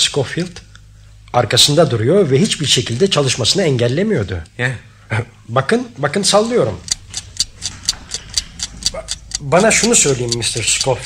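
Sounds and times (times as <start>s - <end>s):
clock being shaken: 6.8s - 11.0s
clock ticking: 6.8s - 11.0s.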